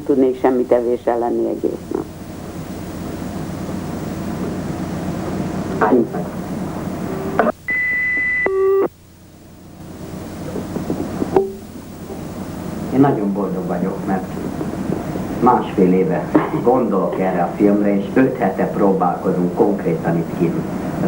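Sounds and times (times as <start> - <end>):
old recording hiss: 0.0 - 21.0
lower buzzing tone: 6.5 - 15.5.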